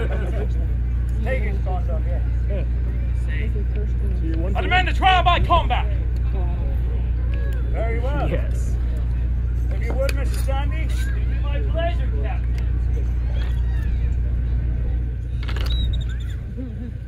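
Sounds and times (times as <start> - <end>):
distant voices talking: 0.0 - 17.0
steady low rumble: 0.0 - 17.0.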